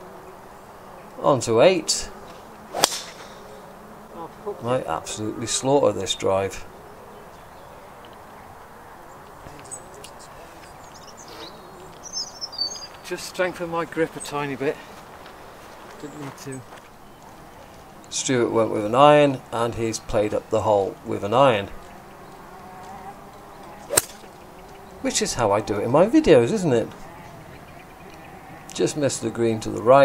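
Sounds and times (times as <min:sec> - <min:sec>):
faint outdoor background noise: 0:00.0 - 0:30.0
golf club striking ball: 0:02.7 - 0:03.6, 0:23.8 - 0:24.4
bird chirping: 0:07.0 - 0:14.5, 0:16.0 - 0:18.1, 0:21.7 - 0:25.8, 0:26.9 - 0:28.8.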